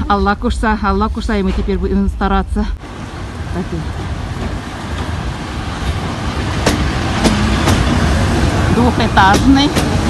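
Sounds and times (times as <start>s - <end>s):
train rumbling past: 0.0s - 10.0s.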